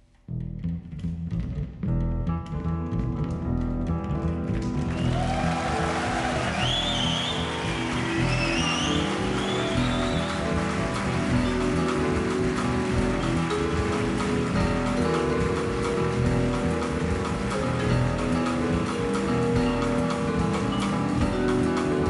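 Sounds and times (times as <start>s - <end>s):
double bass: 0.1s - 22.0s
jazz band playing: 2.6s - 22.0s
audience applauding: 4.5s - 22.0s
whistles from audience: 4.9s - 11.6s.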